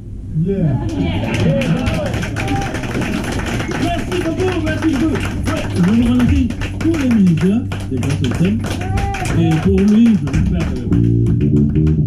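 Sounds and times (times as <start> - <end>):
jazz band playing: 2.8 - 12.0
sharp percussive taps: 2.9 - 12.0.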